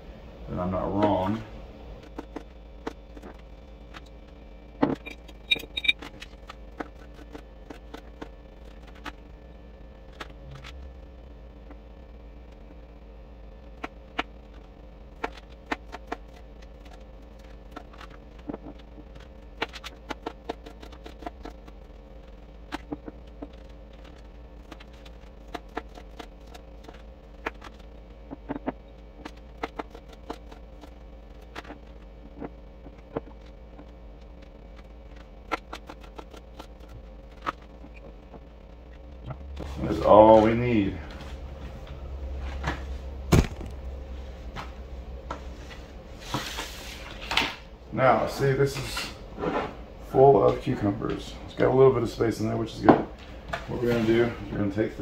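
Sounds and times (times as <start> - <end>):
low hum: 0.0 - 55.0.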